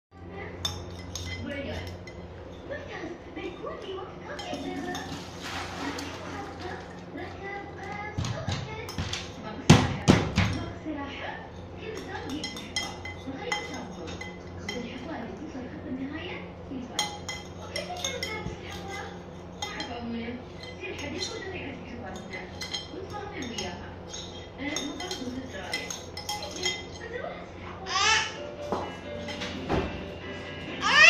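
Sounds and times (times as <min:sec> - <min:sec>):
spoons clinking on a plate: 0:00.6 - 0:07.4, 0:11.5 - 0:15.4, 0:16.9 - 0:27.2, 0:28.5 - 0:30.2.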